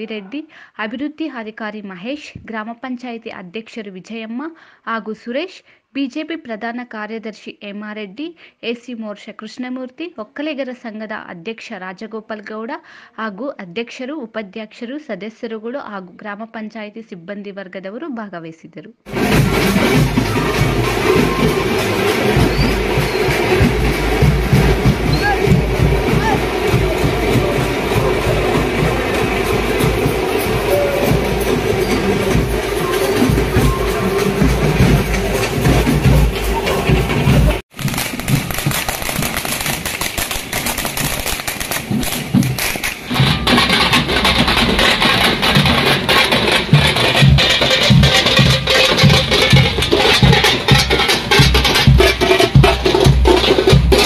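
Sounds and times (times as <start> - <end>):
firecrackers popping: 19.1 - 54.0
procession drums beating: 19.1 - 54.0.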